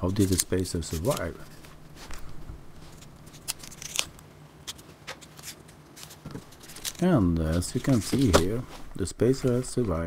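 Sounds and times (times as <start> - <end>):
clicks and rustles of handling: 0.0 - 10.0.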